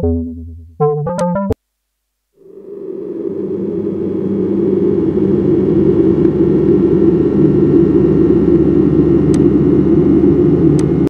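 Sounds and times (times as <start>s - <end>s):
low noisy synthesizer drone: 0.0s - 11.0s.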